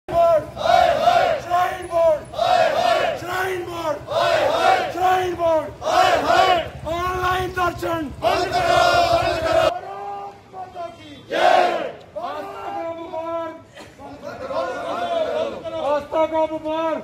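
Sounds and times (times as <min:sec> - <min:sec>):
crowd chanting in unison: 0:00.1 - 0:06.8, 0:08.1 - 0:09.8, 0:11.3 - 0:12.4, 0:14.4 - 0:15.6.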